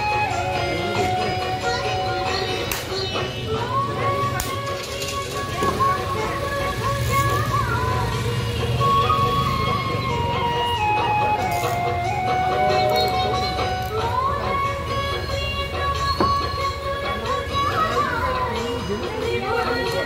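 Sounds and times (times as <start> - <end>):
held melody line: 0.0 - 20.0.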